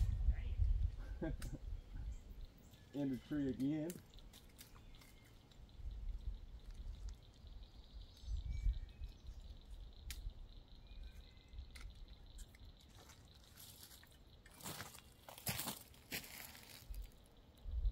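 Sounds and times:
low rumble: 0.0 - 2.4
undergrowth crunching underfoot: 12.8 - 17.3.

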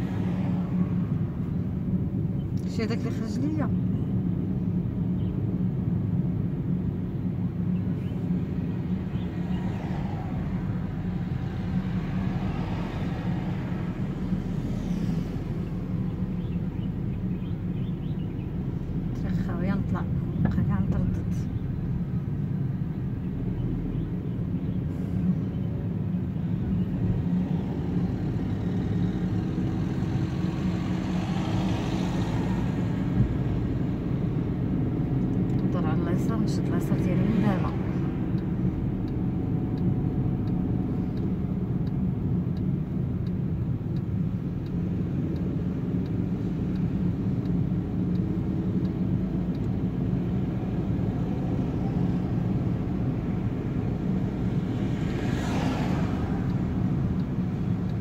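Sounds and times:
car engine and road noise: 0.0 - 58.0.

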